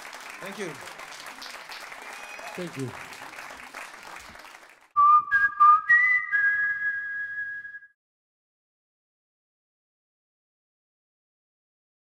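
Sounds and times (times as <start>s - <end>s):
audience applause: 0.0s - 5.0s.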